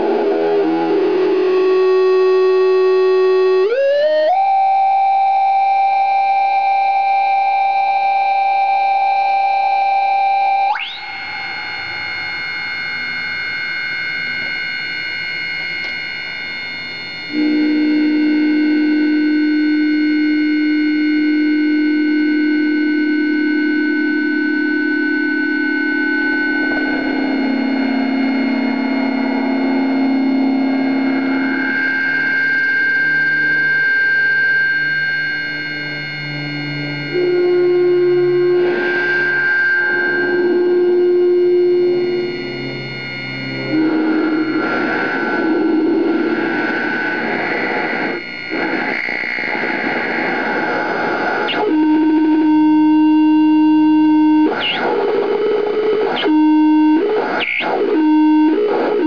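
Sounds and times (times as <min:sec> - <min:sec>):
electronic feedback drone: 0:00.0 - 0:59.0
low tone: 0:08.6 - 0:59.0.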